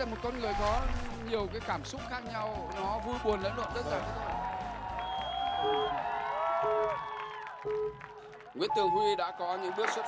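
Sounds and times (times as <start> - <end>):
background show music: 0.0 - 6.0
stadium crowd cheering and clapping: 0.0 - 10.0.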